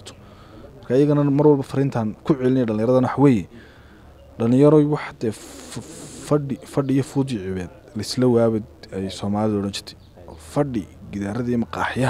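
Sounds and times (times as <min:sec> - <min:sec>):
breathy hiss: 0:05.4 - 0:06.3.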